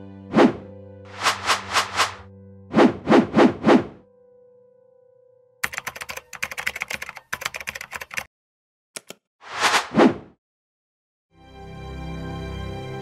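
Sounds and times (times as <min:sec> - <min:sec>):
short rush of noise: 0:00.4 - 0:02.2
keyboard key clicks: 0:05.6 - 0:08.3, 0:09.0 - 0:09.2.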